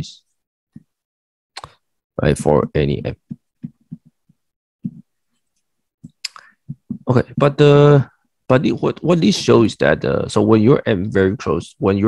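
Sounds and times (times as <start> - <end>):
stylus tapping on a tablet: 2.6 - 5.1, 6.0 - 7.5.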